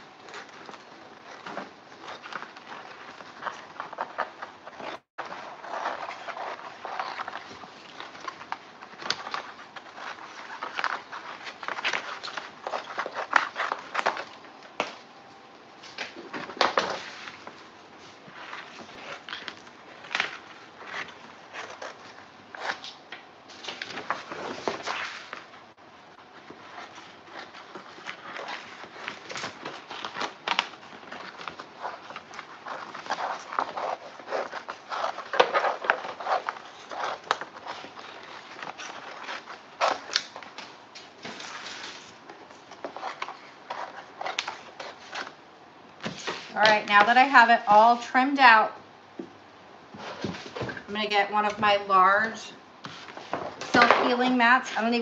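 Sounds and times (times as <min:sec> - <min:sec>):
stiff paper crackling and rustling: 0:00.0 - 0:15.0, 0:15.8 - 0:45.4.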